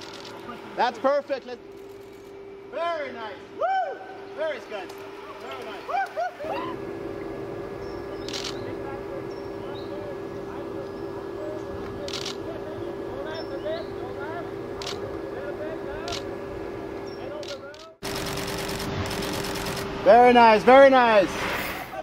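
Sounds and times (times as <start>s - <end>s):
steady hum: 0.0s - 22.0s
camera shutter bursts: 8.2s - 8.6s, 12.0s - 12.4s, 14.8s - 15.0s, 16.0s - 16.2s, 17.4s - 19.9s.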